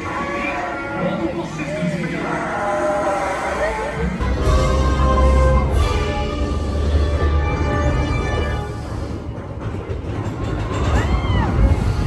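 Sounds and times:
ride soundtrack music: 0:00.0 - 0:12.0.

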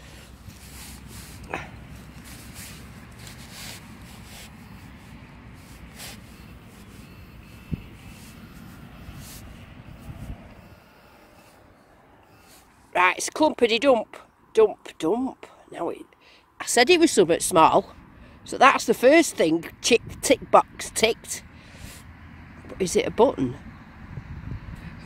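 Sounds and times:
steady rumble: 0:00.0 - 0:13.1
rustling of soil and turf by hand: 0:00.0 - 0:13.2.

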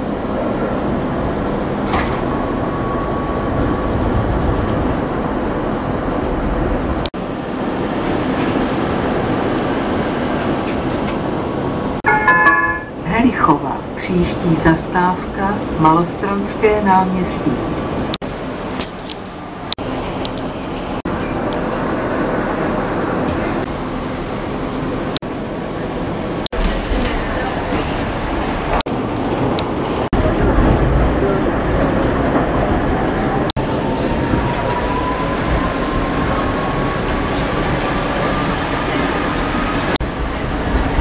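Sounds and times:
tram rumble and rattle: 0:00.0 - 0:41.0.

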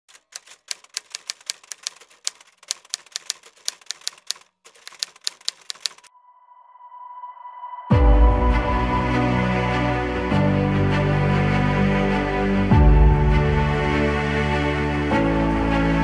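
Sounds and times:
typewriter key clicks: 0:00.1 - 0:06.1
music with deep hit: 0:07.9 - 0:09.3, 0:12.7 - 0:13.8.

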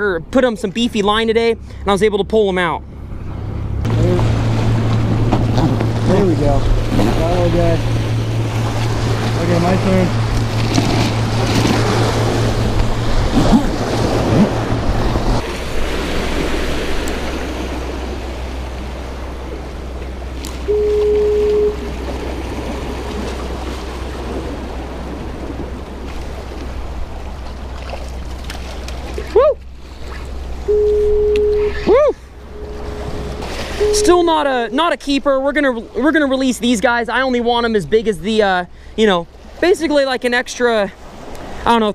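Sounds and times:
ocean surf breaking on rocks: 0:03.8 - 0:29.2, 0:29.8 - 0:41.9
short steady tone: 0:20.6 - 0:22.0, 0:30.6 - 0:35.0.

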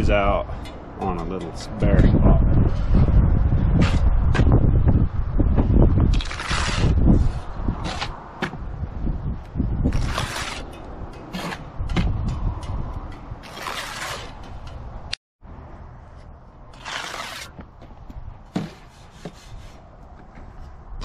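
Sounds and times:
trowel scraping mortar: 0:06.1 - 0:08.2, 0:09.8 - 0:11.7, 0:13.4 - 0:14.5, 0:16.7 - 0:17.6.

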